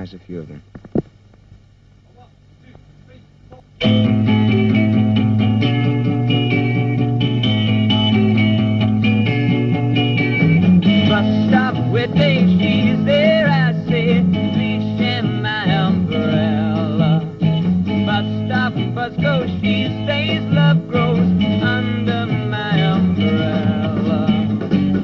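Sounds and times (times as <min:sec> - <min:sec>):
rock band playing live: 0:03.8 - 0:25.0.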